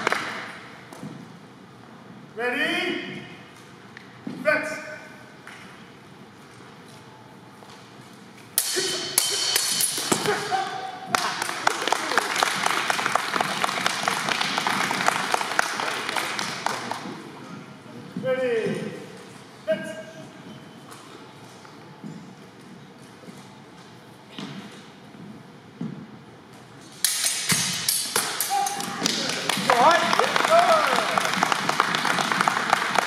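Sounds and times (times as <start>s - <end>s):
fencing weapons clacking: 8.4s - 12.1s, 26.8s - 30.0s
crowd applauding in echoing hall: 11.1s - 17.2s, 28.2s - 33.0s.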